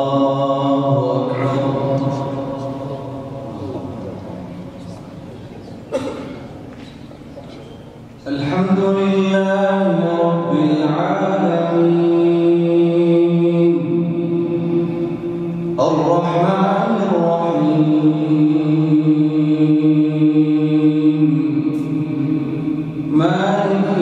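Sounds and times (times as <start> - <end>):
man chanting recitation: 0.0 - 5.8, 8.2 - 24.0.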